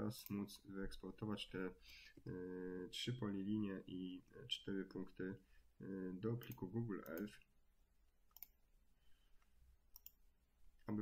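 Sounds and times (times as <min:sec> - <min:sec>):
computer mouse click: 0:06.4 - 0:07.3, 0:08.3 - 0:08.6, 0:09.4 - 0:10.2.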